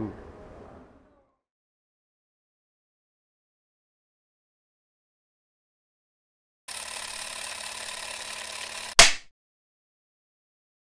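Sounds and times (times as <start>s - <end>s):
loud sharp knock: 9.0s - 9.3s.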